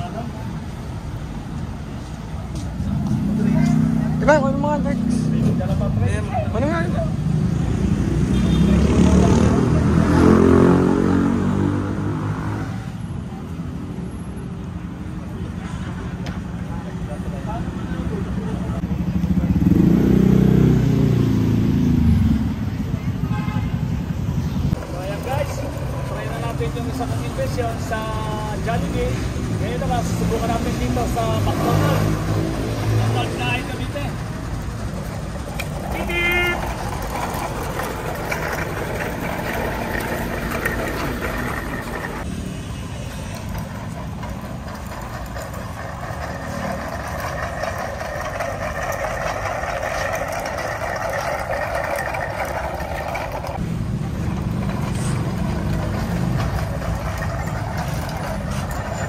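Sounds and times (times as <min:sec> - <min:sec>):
vehicle engines passing: 0:00.0 - 0:59.0
truck engine rumble: 0:23.9 - 0:59.0
voices: 0:24.8 - 0:32.2, 0:32.8 - 0:42.2.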